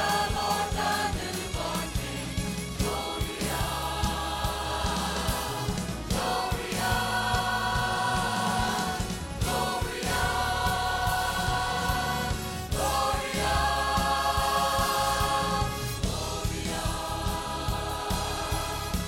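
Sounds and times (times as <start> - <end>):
mixed choir singing: 0.0 - 19.0.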